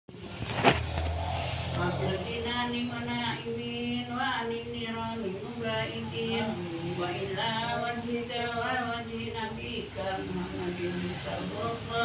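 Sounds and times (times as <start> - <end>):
low hum: 0.5 - 4.8
woman reciting a prayer: 1.8 - 12.0.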